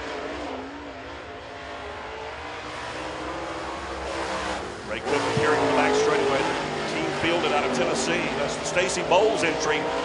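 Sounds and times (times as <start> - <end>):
race car engine running: 0.0 - 10.0.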